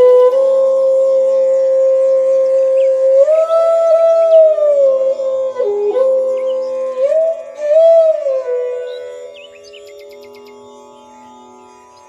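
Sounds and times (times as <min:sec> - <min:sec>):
flute sustained notes: 0:00.0 - 0:12.0.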